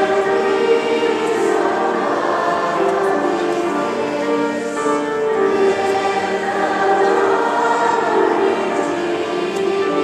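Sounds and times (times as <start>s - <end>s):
children's choir singing: 0.0s - 10.0s.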